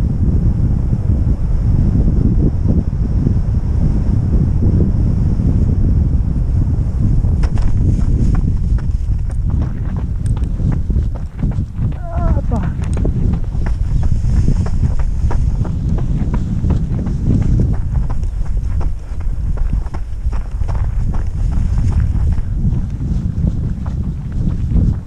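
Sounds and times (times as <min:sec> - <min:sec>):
wind buffeting microphone: 0:00.0 - 0:25.0
footsteps crunching on gravel: 0:07.4 - 0:25.0.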